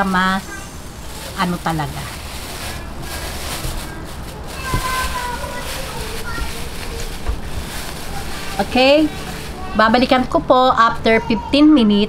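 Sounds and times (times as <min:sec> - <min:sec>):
plastic bag crinkling: 0:00.0 - 0:10.3.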